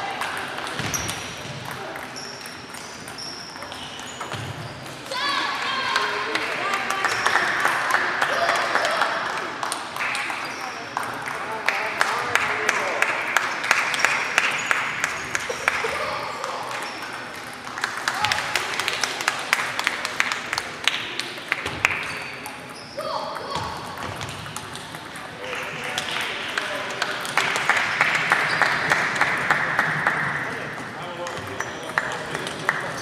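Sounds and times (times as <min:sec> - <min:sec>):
table tennis balls clicking: 0:16.7 - 0:29.0.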